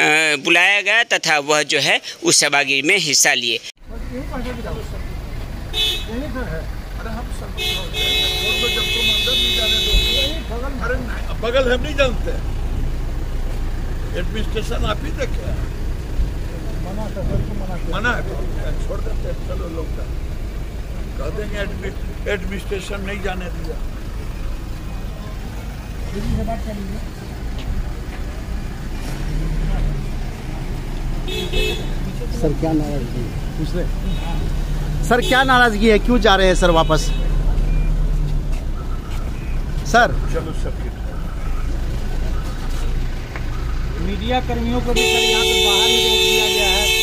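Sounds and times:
man speaking: 0:00.0 - 0:04.9
car engine idling: 0:03.8 - 0:47.0.

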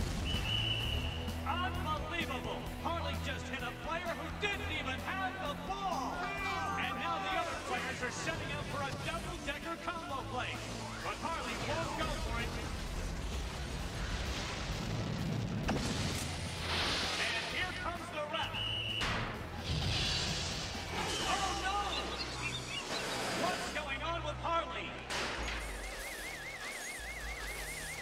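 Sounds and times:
whooshes and crashes: 0:10.8 - 0:17.6, 0:19.4 - 0:21.2
warbling siren tone: 0:25.6 - 0:28.0.

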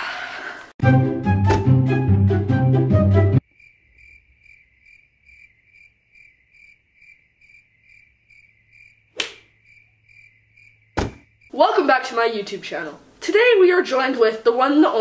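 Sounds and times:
cricket chirping: 0:03.4 - 0:11.6
sharp click: 0:09.2 - 0:09.4.

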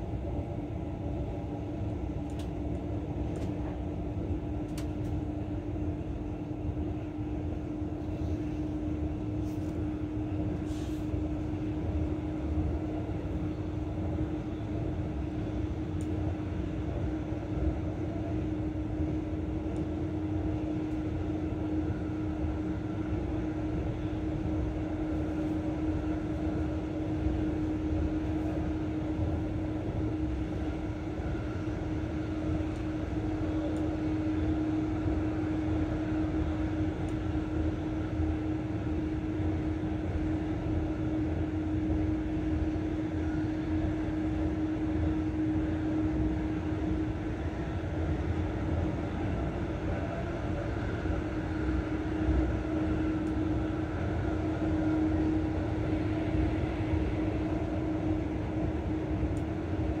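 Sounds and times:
constant low hum: 0:00.0 - 1:00.0
train rumble: 0:00.0 - 1:00.0.

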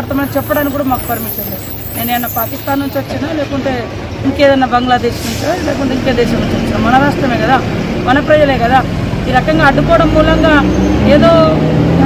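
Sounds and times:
woman speaking: 0:00.0 - 0:11.6.

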